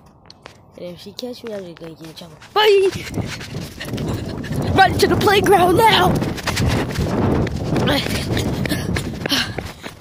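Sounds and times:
running footfalls on pavement: 0.2 - 10.0.

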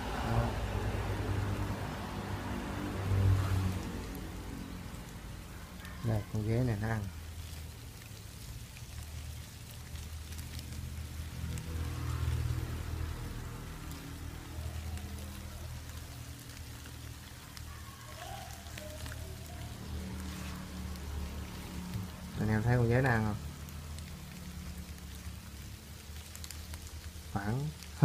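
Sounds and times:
crickets pattering and rustling: 1.0 - 28.0.

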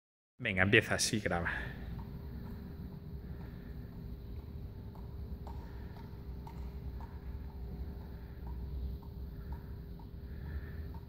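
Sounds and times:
low room hum: 0.4 - 11.0.

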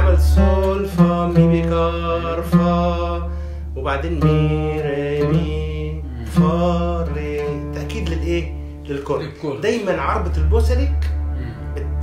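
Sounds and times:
man singing long held notes: 0.0 - 8.6
keyboard low bass: 0.0 - 12.0.

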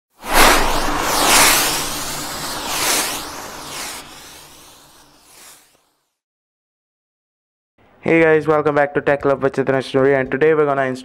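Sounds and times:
whooshing sound effects: 0.2 - 5.8.

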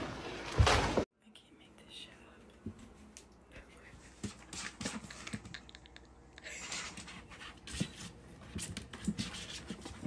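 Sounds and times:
faint whispering: 1.2 - 2.6, 3.4 - 4.2.

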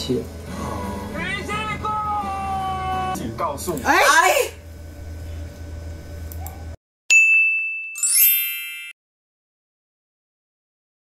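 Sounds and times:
bright high ding: 7.1 - 9.0
shimmering chime flourish: 7.1 - 9.0.

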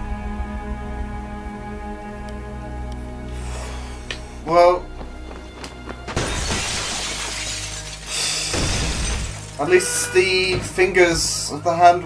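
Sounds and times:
glass shattering: 6.1 - 10.8.

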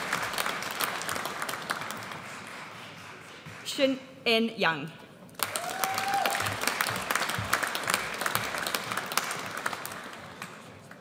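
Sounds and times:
audience applauding: 0.0 - 3.7, 5.4 - 11.0.

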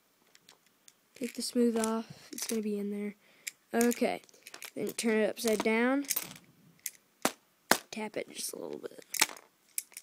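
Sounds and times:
plastic bricks clicking: 0.3 - 2.6, 3.4 - 7.9, 9.0 - 10.0.

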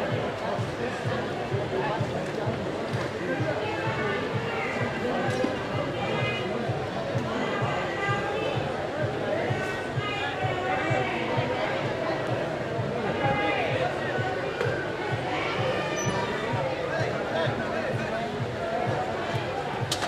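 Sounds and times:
music: 0.0 - 20.0.

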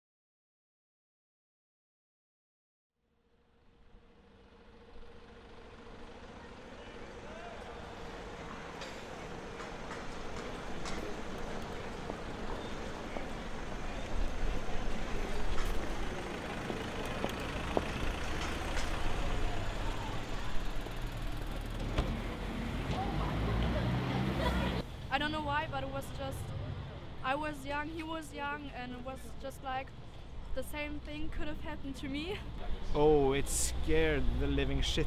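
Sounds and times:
large vehicle engine running: 3.4 - 35.0
traffic rumble: 3.4 - 35.0
faint voices of passers-by: 6.1 - 33.1.

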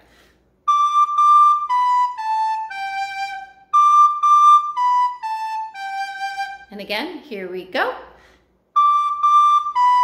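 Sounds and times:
soprano recorder melody: 0.6 - 6.7, 8.7 - 10.0.

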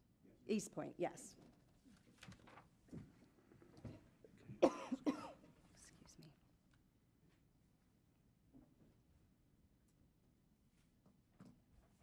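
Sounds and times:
faint room sounds: 0.1 - 12.0.

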